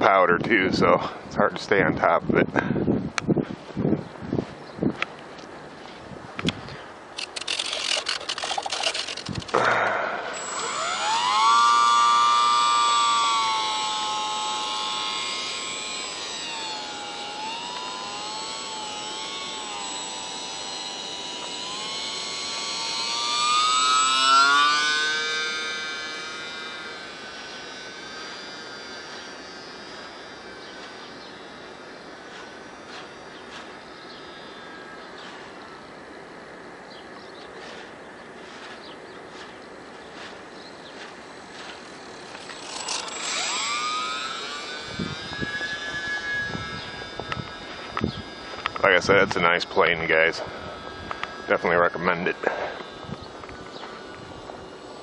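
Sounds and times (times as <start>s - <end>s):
model plane motor whine: 5.0s - 55.0s
scratchy noise: 7.2s - 9.7s.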